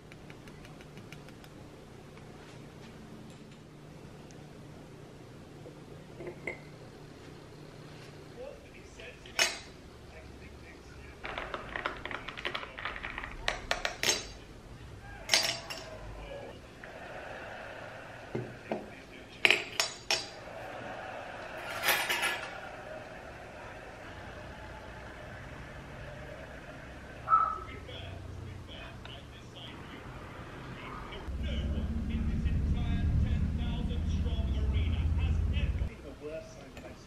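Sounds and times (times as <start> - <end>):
cutlery clinking on dishes: 9.3 - 9.7, 15.3 - 16.0, 19.4 - 20.4, 21.6 - 22.6.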